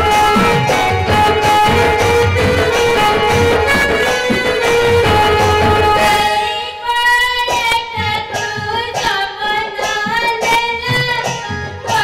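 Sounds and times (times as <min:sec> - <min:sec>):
drum strokes: 0:00.0 - 0:06.6
steady musical accompaniment: 0:00.0 - 0:12.0
high singing voice: 0:06.0 - 0:12.0.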